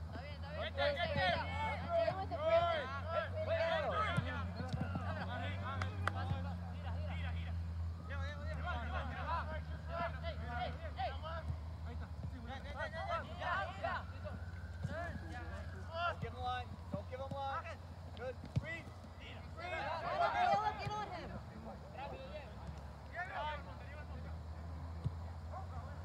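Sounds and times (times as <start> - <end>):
players and spectators shouting: 0.2 - 17.8, 18.6 - 26.0.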